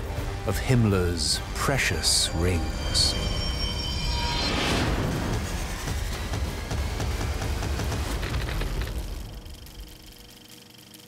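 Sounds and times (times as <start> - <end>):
scattered crackles: 6.6 - 11.0.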